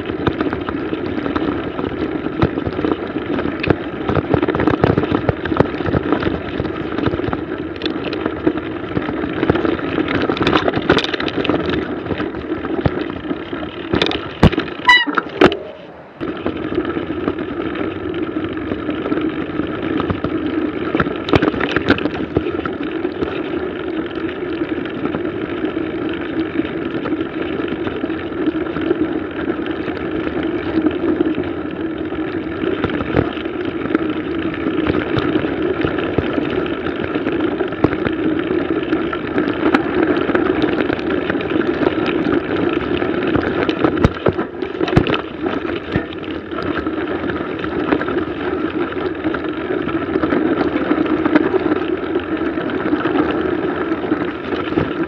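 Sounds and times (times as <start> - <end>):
bike knocks and rattles: 0.0 - 55.0
tyre and wind noise: 0.0 - 55.0.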